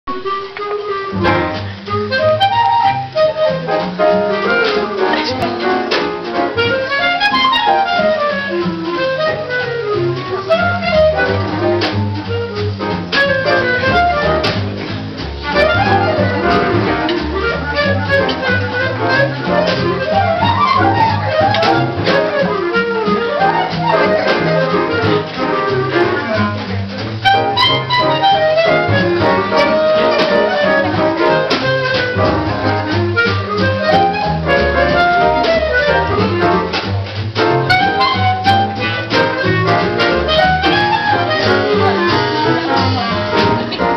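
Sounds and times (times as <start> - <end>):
clarinet solo: 0.1 - 14.6, 15.4 - 36.8, 37.4 - 43.9
double bass walking: 0.1 - 43.9.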